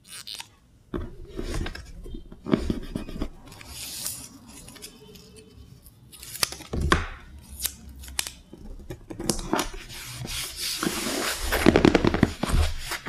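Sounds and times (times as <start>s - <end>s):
paper rustling and crackling: 8.1s - 13.0s.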